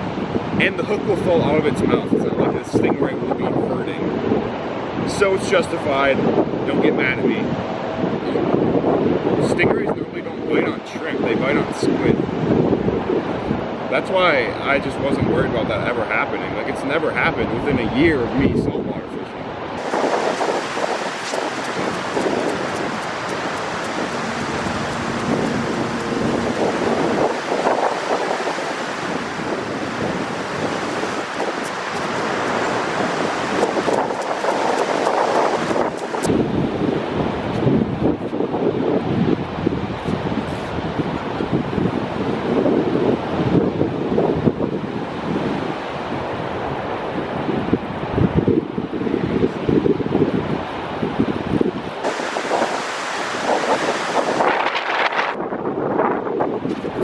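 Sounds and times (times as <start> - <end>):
wind on microphone: 0.0 - 57.0
ocean surf breaking: 19.5 - 37.3, 52.0 - 55.4.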